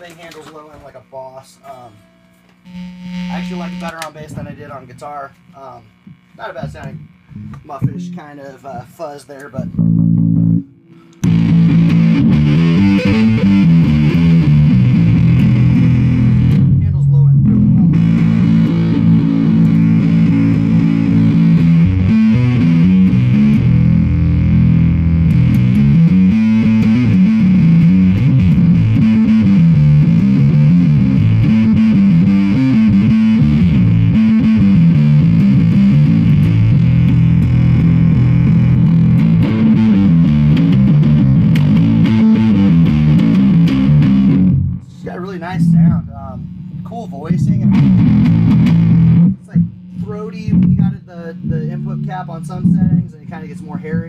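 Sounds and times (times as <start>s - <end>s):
fuzzy electric bass riff: 0.0s - 54.0s.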